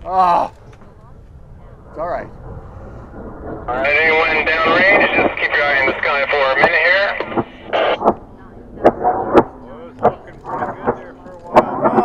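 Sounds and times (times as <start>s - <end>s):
sharp clicks: 3.8s - 12.0s.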